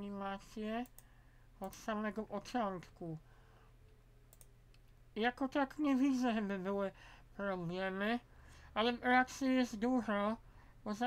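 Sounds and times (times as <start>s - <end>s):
low steady hum: 0.0s - 11.0s
computer mouse clicks: 0.8s - 1.9s, 3.9s - 5.0s.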